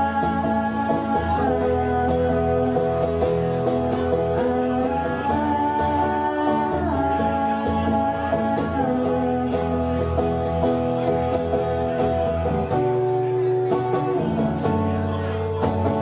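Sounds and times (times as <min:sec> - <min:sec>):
person singing through pa: 0:00.0 - 0:12.4
acoustic guitar playing: 0:00.0 - 0:16.0.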